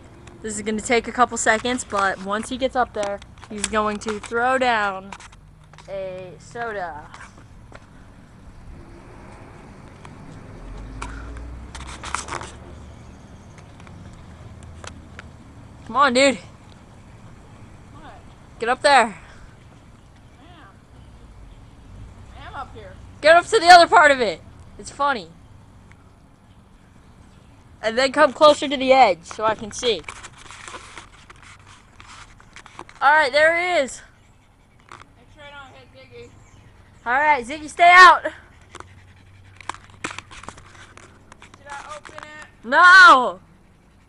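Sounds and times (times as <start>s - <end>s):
faint outdoor background hiss: 0.0s - 44.0s
clicks and scrapes on metal tower: 1.1s - 7.5s, 11.0s - 15.4s, 28.4s - 33.4s, 38.6s - 42.8s.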